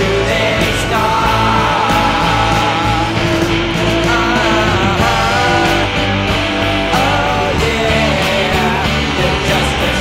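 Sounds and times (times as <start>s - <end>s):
rock music with guitar: 0.0s - 10.0s.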